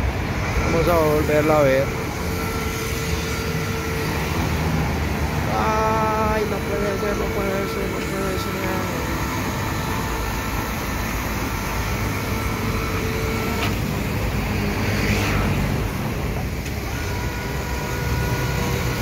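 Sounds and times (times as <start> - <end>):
electric hoist motor humming: 0.0 - 19.0.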